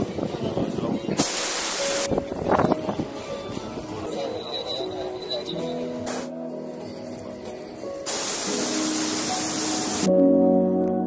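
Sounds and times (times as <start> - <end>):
propane burner hissing: 1.2 - 2.1, 8.0 - 10.1
background music sustained tones: 1.8 - 11.0.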